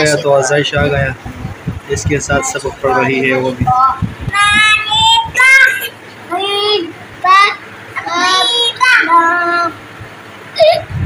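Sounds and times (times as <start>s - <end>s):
toddler chanting sing-song: 2.1s - 9.9s.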